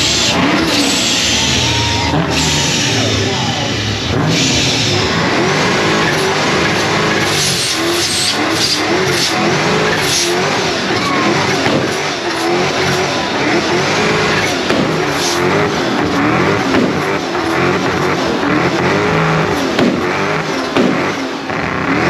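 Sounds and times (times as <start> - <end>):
car engine revving hard: 0.0 - 22.0
tyres spinning: 0.0 - 22.0.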